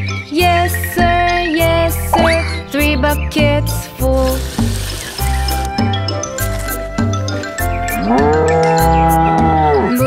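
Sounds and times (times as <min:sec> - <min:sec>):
upbeat children's music: 0:00.0 - 0:04.7
cow mooing: 0:08.0 - 0:09.9.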